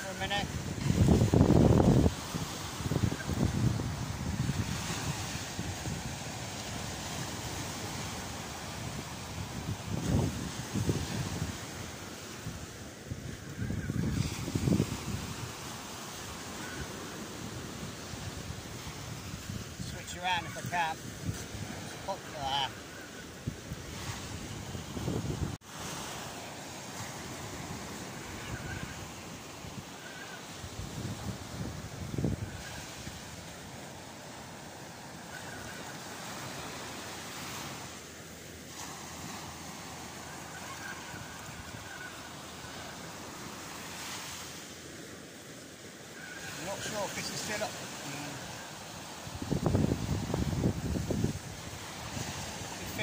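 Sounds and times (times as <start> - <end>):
wind buffeting microphone: 0.0 - 22.3, 23.3 - 25.6, 27.3 - 33.4, 47.5 - 53.0
surf: 0.0 - 53.0.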